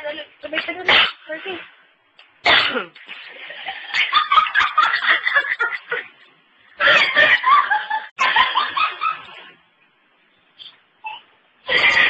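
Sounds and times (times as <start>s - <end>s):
person laughing: 6.8s - 9.3s.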